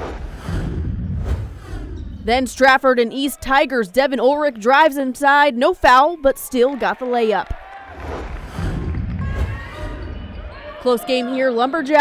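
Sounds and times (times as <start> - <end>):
whoosh: 0.0 - 2.3, 8.0 - 10.1
deep low rumble: 0.0 - 2.5, 8.0 - 10.5.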